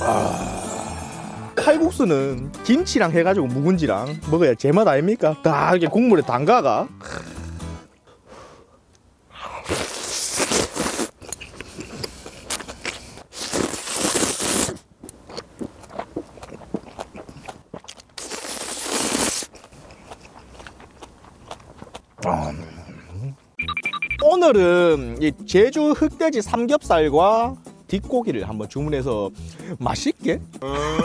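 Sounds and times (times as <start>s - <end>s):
man slurping noodles: 0.0s - 1.6s, 7.0s - 7.8s, 9.4s - 14.9s, 18.2s - 19.6s
chewing: 11.2s - 23.4s.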